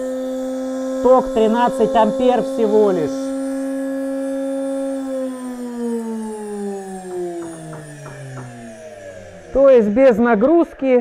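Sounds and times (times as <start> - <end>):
electric motor whine: 0.0 - 11.0.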